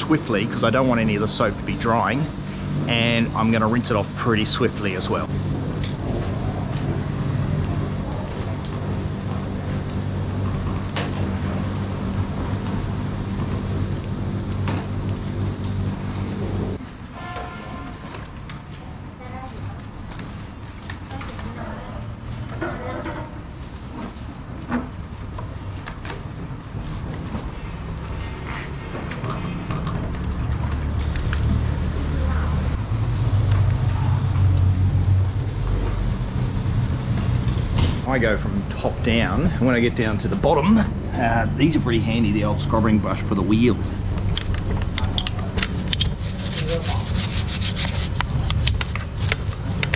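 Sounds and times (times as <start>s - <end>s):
low motor hum: 0.0s - 16.8s, 29.6s - 49.9s.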